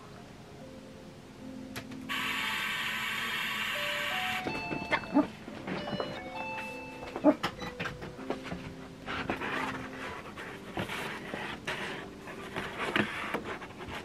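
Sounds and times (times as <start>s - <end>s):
background music: 0.0s - 14.0s.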